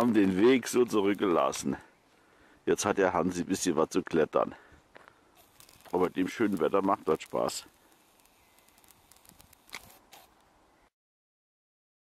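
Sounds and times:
small ticks and crackles: 0:00.0 - 0:01.8, 0:04.9 - 0:10.6
faint hiss: 0:00.0 - 0:10.9.

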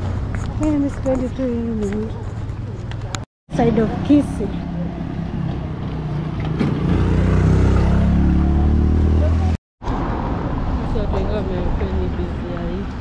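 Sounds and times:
street noise: 0:00.0 - 0:13.0
voices: 0:00.6 - 0:05.5, 0:10.8 - 0:13.0
vehicle engine passing: 0:03.5 - 0:12.6.

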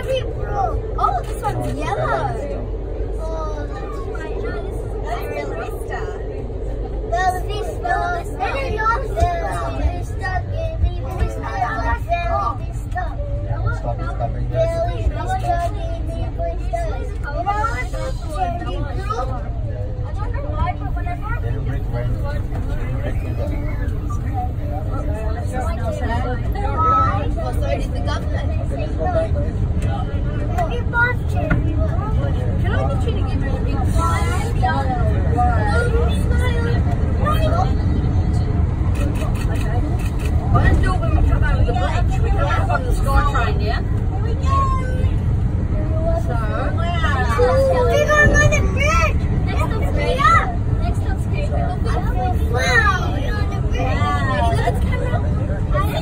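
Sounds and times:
passengers chatting: 0:00.0 - 0:56.0
train rumbling: 0:00.0 - 0:56.0.

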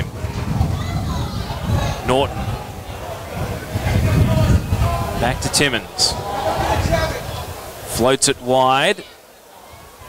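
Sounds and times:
wind rumbling on microphone: 0:00.0 - 0:08.0
faint distant voices: 0:00.0 - 0:10.0.

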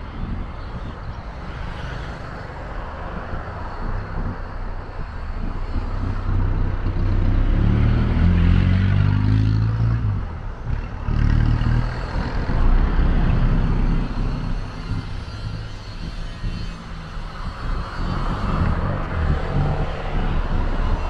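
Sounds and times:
vehicle engines running: 0:00.0 - 0:21.0.

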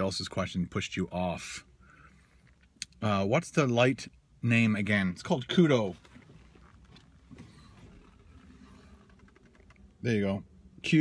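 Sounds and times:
car cabin hum: 0:04.0 - 0:11.0
handling noise: 0:05.9 - 0:10.0.

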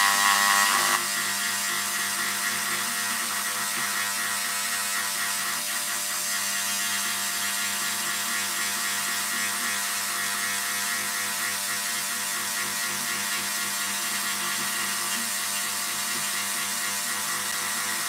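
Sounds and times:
rotary tool carving wood: 0:00.0 - 0:18.0.

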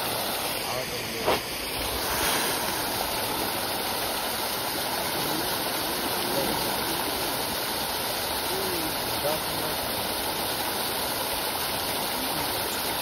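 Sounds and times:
fish splashing: 0:00.0 - 0:08.9
water jet churning: 0:00.0 - 0:13.0.

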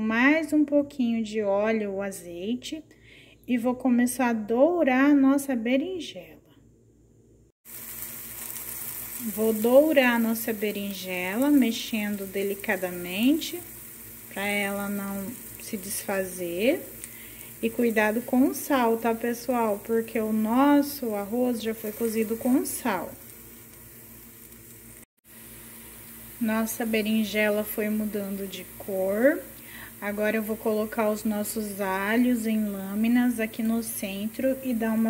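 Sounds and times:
eggplant sizzling in oil: 0:07.6 - 0:35.0.

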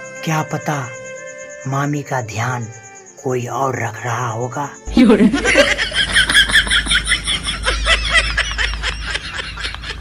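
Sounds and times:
high-pitched laughter: 0:05.0 - 0:10.0.

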